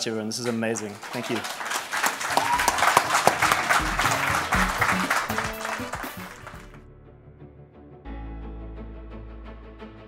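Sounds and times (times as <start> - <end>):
audience applauding: 0.0 - 6.8
music playing: 2.2 - 10.0.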